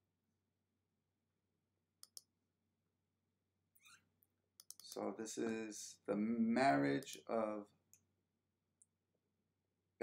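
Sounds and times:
computer mouse clicks: 2.0s - 2.3s, 4.6s - 5.0s
man speaking: 4.9s - 7.7s.

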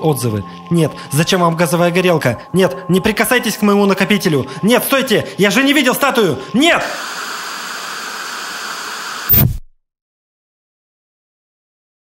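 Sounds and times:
tv static hiss: 6.6s - 9.6s.

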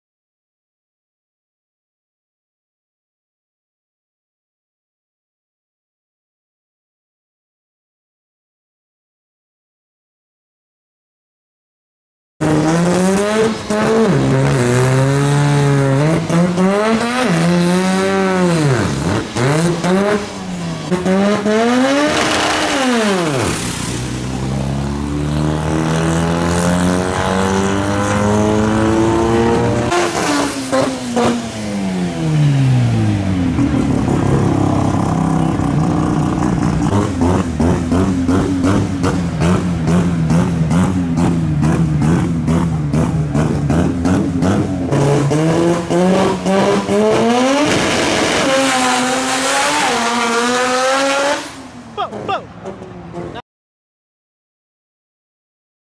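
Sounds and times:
rotary engine revving: 12.4s - 52.3s.

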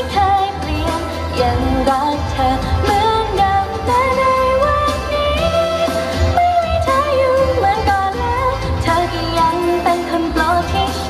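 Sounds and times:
pop backing music with bass: 0.0s - 11.0s
woman singing into a microphone: 0.0s - 11.0s.

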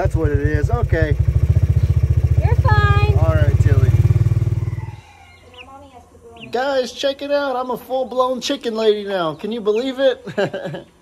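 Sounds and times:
small engine running: 0.0s - 5.0s.

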